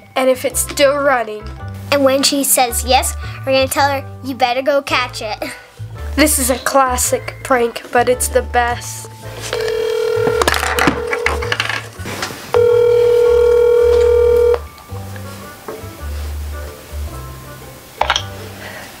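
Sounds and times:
background music with low bass: 0.0 - 19.0
phone ringing tone: 9.5 - 11.6, 12.6 - 14.7.

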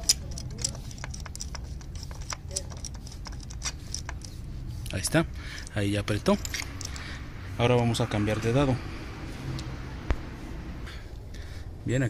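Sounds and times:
metallic clicks of socket wrench: 0.0 - 4.3, 5.6 - 7.1.

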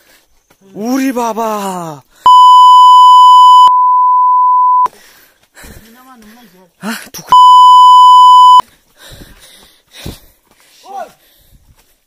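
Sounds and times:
censor bleep: 2.3 - 4.9, 7.3 - 8.6.

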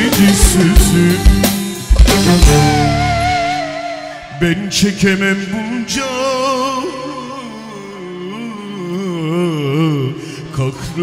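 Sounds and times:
man singing through pa: 0.0 - 11.0.

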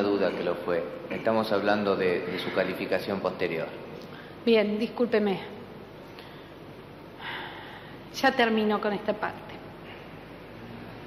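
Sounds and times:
faint steady hiss: 0.0 - 11.0
person breathing in quickly: 7.2 - 8.1.

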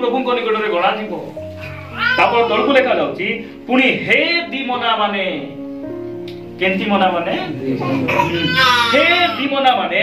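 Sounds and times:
soft guitar music: 0.5 - 10.0
man preaching: 2.0 - 5.6, 6.6 - 10.0.

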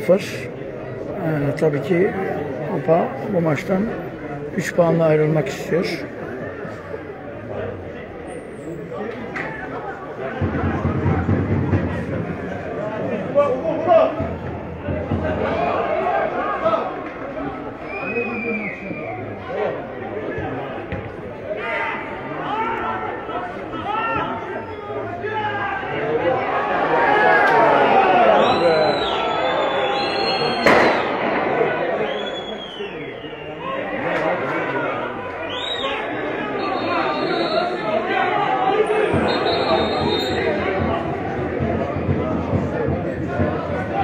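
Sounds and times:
crowd noise: 0.0 - 44.0
spectators chattering: 0.0 - 44.0
sharp bang: 30.5 - 32.8.

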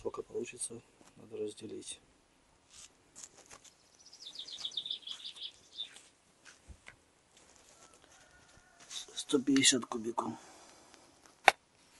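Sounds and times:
songbird chirping: 3.3 - 9.8.

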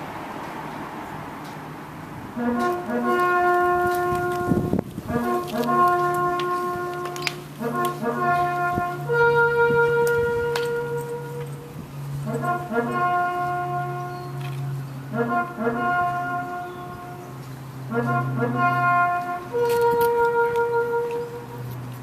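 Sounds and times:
bugle call: 2.4 - 17.3, 17.9 - 21.7.

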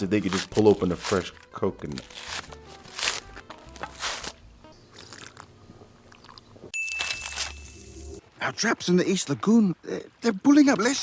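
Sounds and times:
background music: 0.0 - 4.9
coconut husk crunching and tearing: 0.0 - 5.6, 6.2 - 7.9
high ding: 6.7 - 7.8.

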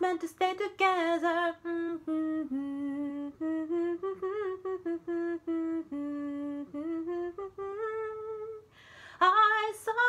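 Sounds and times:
person humming a melody: 1.8 - 8.6.

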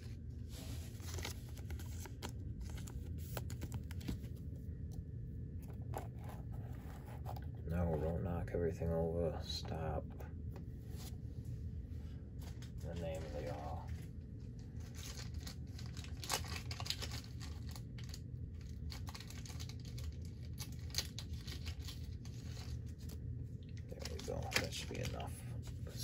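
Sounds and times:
packaging crinkling and tearing: 0.9 - 4.4, 12.6 - 25.3.

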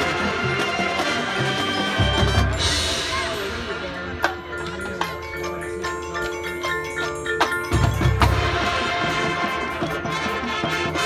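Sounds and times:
marching band playing: 0.0 - 11.0.

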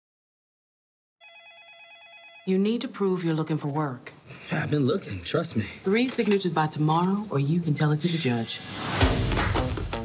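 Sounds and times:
electronic telephone ringing: 1.2 - 2.8.

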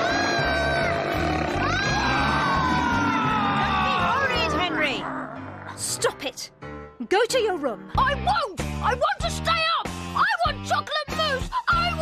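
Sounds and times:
child screaming: 0.0 - 4.8
cartoon dinosaur roar: 0.0 - 5.9.

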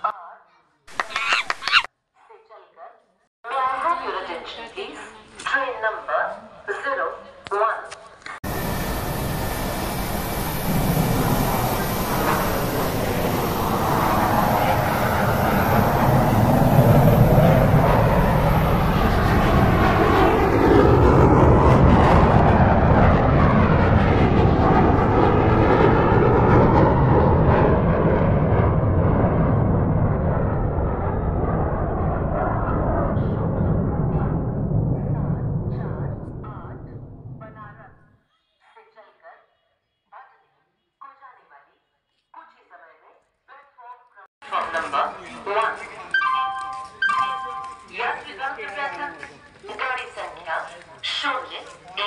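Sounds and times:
aircraft engine passing overhead: 8.4 - 38.0.

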